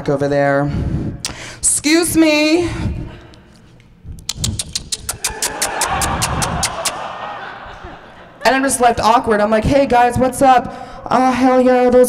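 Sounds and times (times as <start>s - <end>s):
quick clapping: 4.3s - 7.1s
audience laughing: 5.1s - 8.8s.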